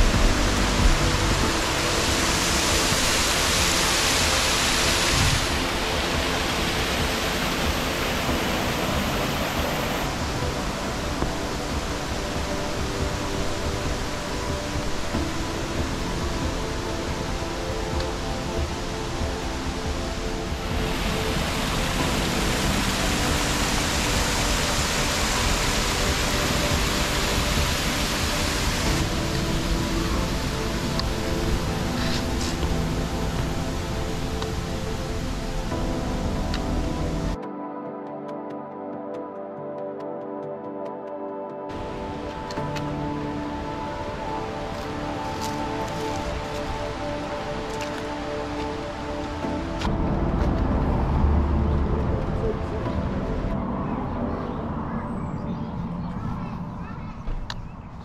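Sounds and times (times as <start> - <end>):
water rushing down rocks: 0.0 - 37.4, 41.7 - 53.6
background music: 0.0 - 58.0.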